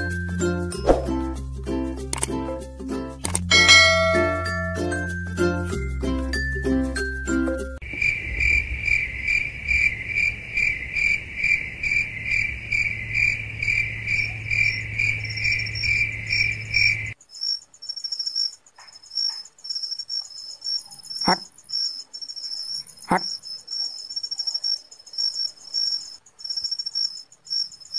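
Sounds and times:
sharp click: 2.1s - 2.4s, 3.2s - 3.5s
crickets chirping: 7.8s - 27.9s
high-pitched insect trill: 7.8s - 27.9s.

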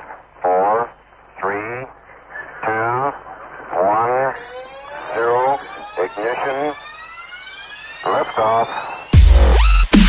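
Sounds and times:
rising sweep: 4.4s - 10.0s.

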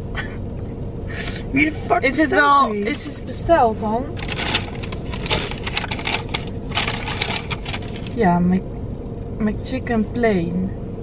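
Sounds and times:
paper packaging crinkling: 4.2s - 8.2s.

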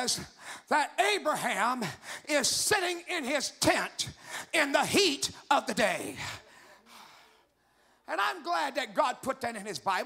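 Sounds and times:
man speaking into a microphone: 0.0s - 6.7s, 8.0s - 10.0s
breath into a microphone: 0.4s - 0.7s, 6.2s - 8.1s.

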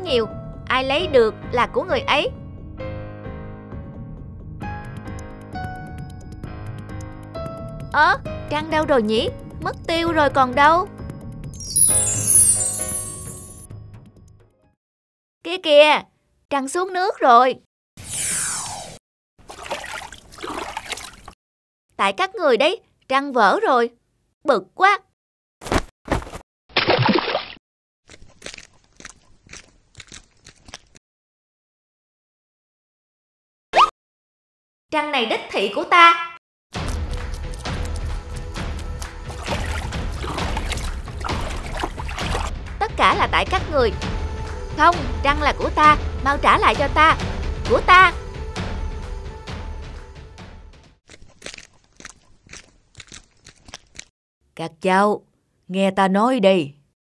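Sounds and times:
footsteps crunching: 51.1s - 54.1s.

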